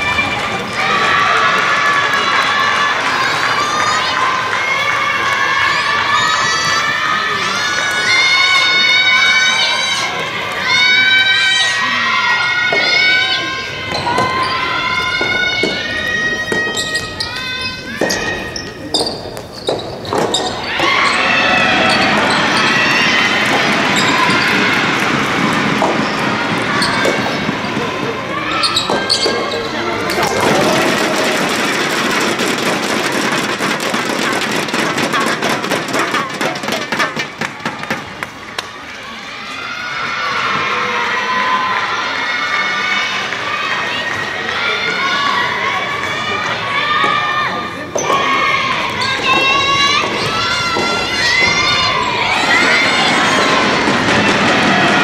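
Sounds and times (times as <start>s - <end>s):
crowd cheering and applause: 0.0s - 17.1s, 20.2s - 55.0s
voices shouting cheers: 0.0s - 18.9s, 20.1s - 55.0s
ball hitting rackets: 18.0s - 21.0s.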